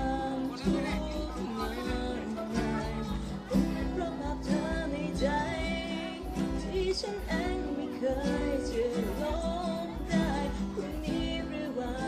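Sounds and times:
live band dance music: 0:00.0 - 0:12.0
person singing ornamented vocal: 0:00.0 - 0:12.0
pulsing bass beat: 0:00.0 - 0:12.0.

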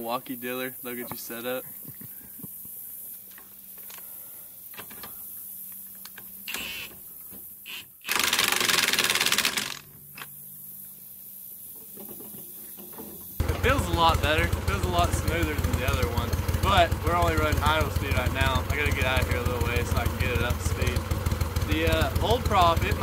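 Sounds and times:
impact wrench rattling: 0:08.1 - 0:10.2
motor idling: 0:08.1 - 0:10.2, 0:13.4 - 0:23.0.

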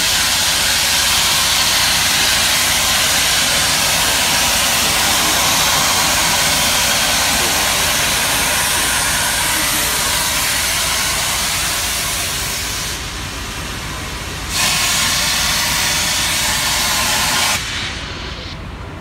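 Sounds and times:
steam locomotive venting steam: 0:00.0 - 0:19.0.

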